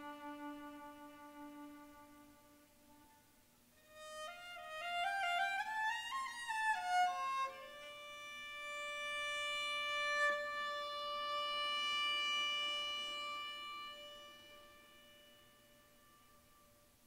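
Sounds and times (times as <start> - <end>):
viola long bowed note: 0.0 - 17.0.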